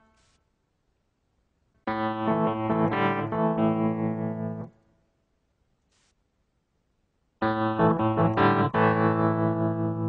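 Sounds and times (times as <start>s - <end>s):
electric piano chords: 1.9s - 4.8s, 7.4s - 10.0s.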